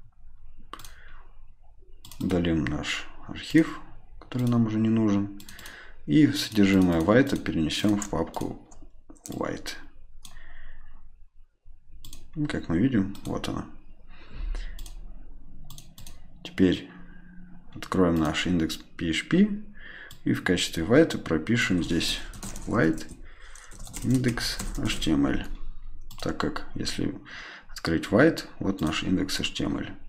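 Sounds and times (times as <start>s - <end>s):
faint low background noise: 0.0s - 30.0s
faint low hum: 0.0s - 30.0s
computer mouse click: 0.7s - 1.1s, 2.0s - 2.4s, 5.4s - 5.8s, 6.4s - 9.5s, 10.2s - 10.4s, 12.0s - 12.3s, 14.7s - 15.0s, 15.6s - 16.2s
mouse buttons clicking: 15.6s - 16.2s.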